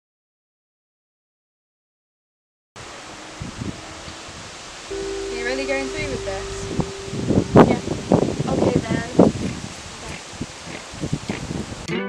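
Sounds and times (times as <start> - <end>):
wind through foliage: 2.8 - 11.9.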